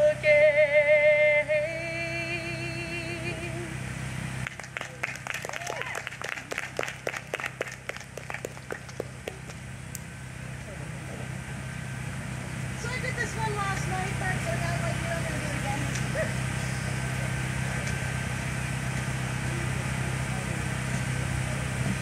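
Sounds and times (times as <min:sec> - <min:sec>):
person singing unaccompanied: 0:00.0 - 0:03.8
steady low hum: 0:00.0 - 0:22.0
audience clapping: 0:04.4 - 0:09.6.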